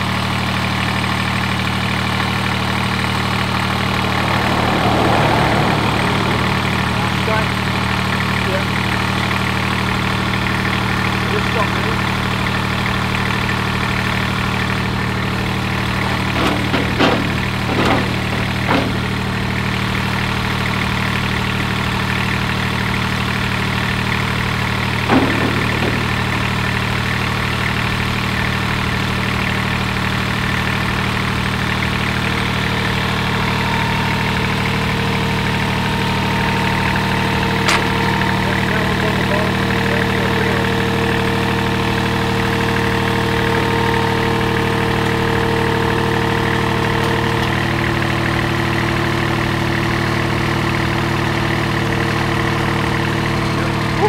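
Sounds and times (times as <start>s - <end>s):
mower diesel engine running: 0.0s - 54.0s
sharp knocks: 25.0s - 27.2s, 37.6s - 38.2s.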